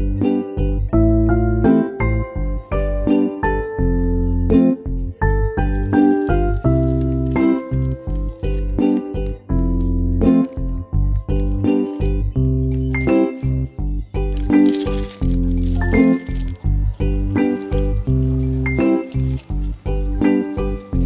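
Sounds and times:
instrumental background music: 0:00.0 - 0:21.0.

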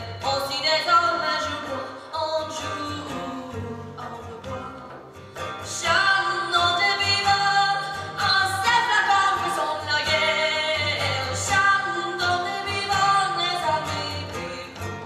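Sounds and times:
strummed acoustic guitar: 0:00.0 - 0:15.0
woman singing folk song: 0:00.0 - 0:15.0.

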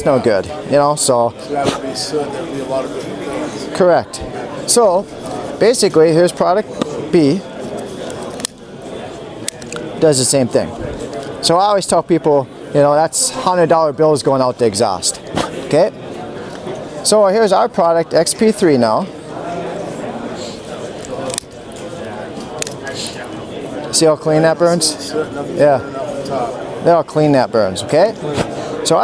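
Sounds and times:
many people talking: 0:00.0 - 0:29.0.

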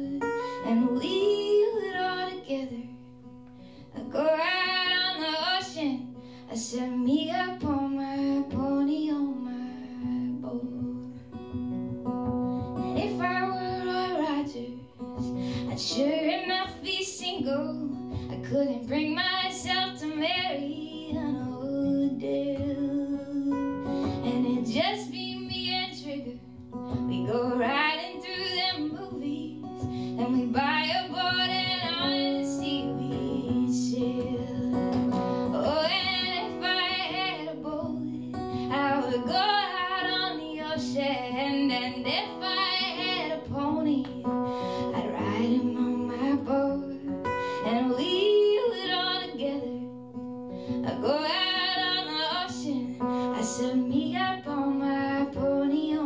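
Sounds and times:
acoustic guitar chords: 0:00.0 - 0:56.0
woman singing: 0:00.0 - 0:56.0.

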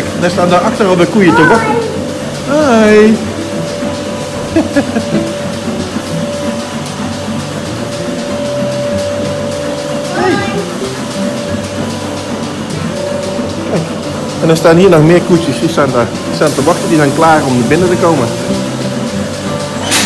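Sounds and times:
background music: 0:00.0 - 0:20.0
vacuum pump humming: 0:00.0 - 0:20.0.

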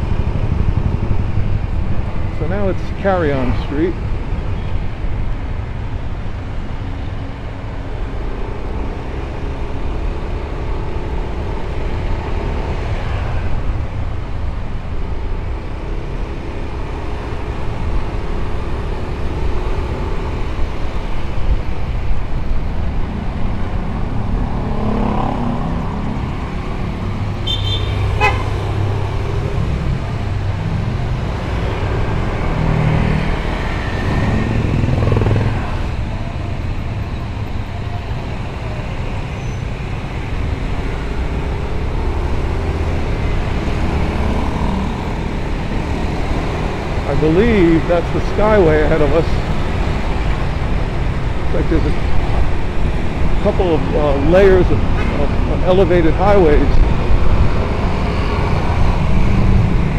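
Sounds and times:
road and traffic noise: 0:00.0 - 0:59.9
high-pitched horn beep: 0:27.4 - 0:28.6
motorcycle engine running: 0:34.0 - 0:36.0.

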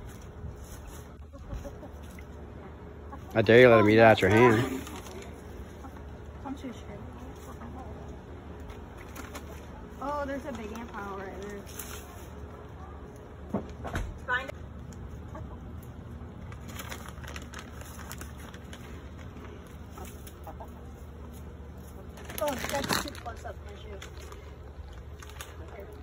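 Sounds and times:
hens clucking: 0:00.0 - 0:13.5, 0:14.8 - 0:16.4, 0:18.2 - 0:26.0.

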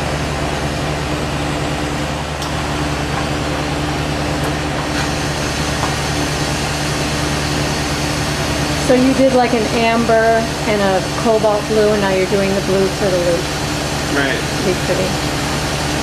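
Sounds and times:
low hum: 0:00.0 - 0:16.0
torch flame hissing: 0:00.0 - 0:16.0.

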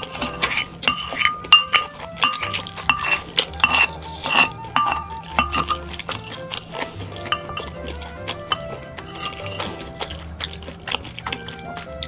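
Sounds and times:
utensils clinking on ceramic dish: 0:00.0 - 0:11.8.

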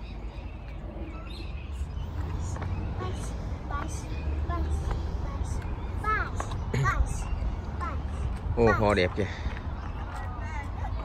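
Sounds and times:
faint voices: 0:00.4 - 0:11.0.

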